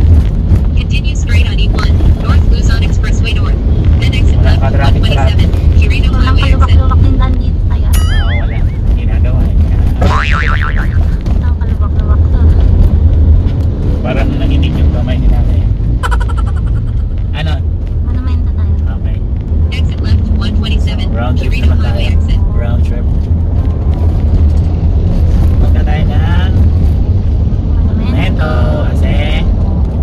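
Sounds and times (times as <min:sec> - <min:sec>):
car engine and tyres rumbling: 0:00.0 - 0:30.0
indistinct voices: 0:00.8 - 0:10.2.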